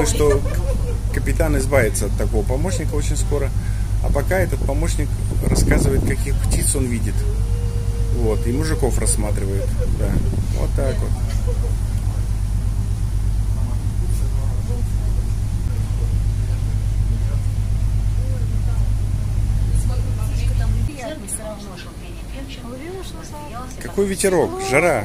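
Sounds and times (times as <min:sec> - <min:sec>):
wind buffeting microphone: 0:00.0 - 0:15.8
faint voices: 0:00.0 - 0:25.0.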